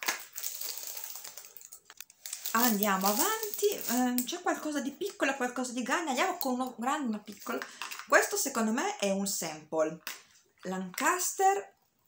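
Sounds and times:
tissue paper and packaging rustling: 0:00.0 - 0:04.3.

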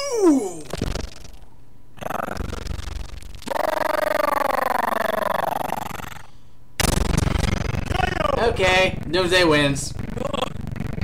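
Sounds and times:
monstrous roar: 0:07.0 - 0:11.0.

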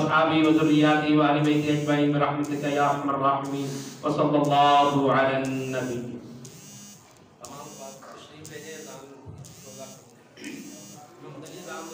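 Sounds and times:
faint high-pitched electrical buzz: 0:00.0 - 0:11.9
men talking quietly: 0:07.4 - 0:11.9.

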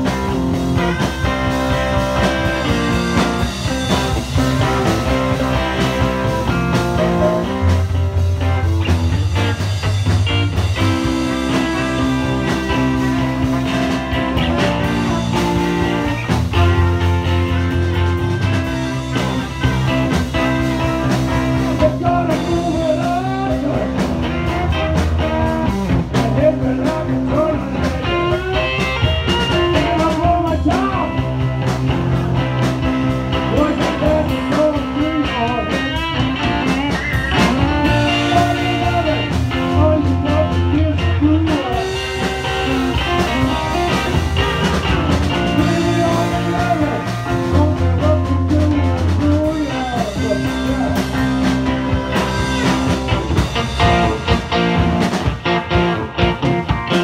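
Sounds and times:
live blues rock band: 0:00.0 - 0:57.0
person singing into microphone: 0:45.5 - 0:51.1.

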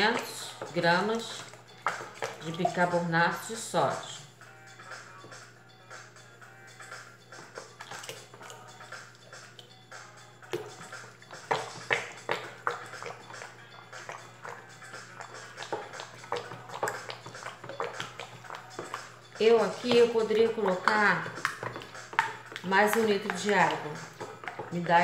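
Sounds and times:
plastic stirrer clicking and sloshing: 0:00.0 - 0:03.4, 0:07.4 - 0:08.7, 0:10.5 - 0:25.0
background music: 0:00.0 - 0:25.0.

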